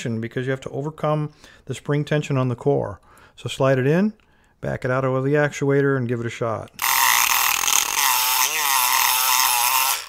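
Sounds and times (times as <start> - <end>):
electric pick gun buzzing: 6.8 - 10.0.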